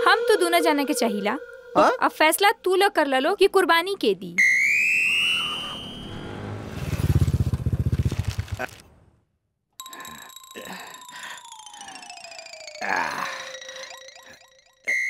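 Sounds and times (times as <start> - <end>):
upward gliding whistle tone: 4.4 - 6.4, 9.8 - 15.0
long downward sliding tone: 4.4 - 6.6, 9.8 - 15.0
fast low rattling roll: 6.8 - 8.8.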